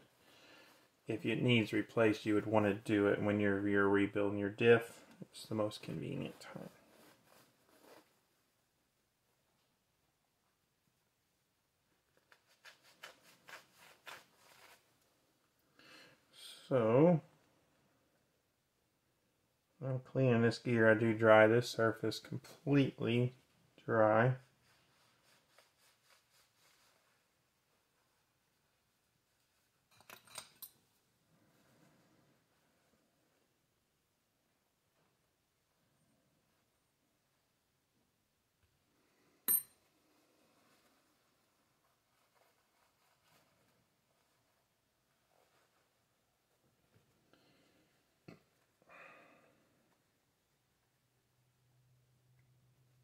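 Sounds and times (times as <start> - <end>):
cloth rubbing: 5.6 - 8.7, 12.1 - 15.3, 24.4 - 29.9, 40.0 - 48.8.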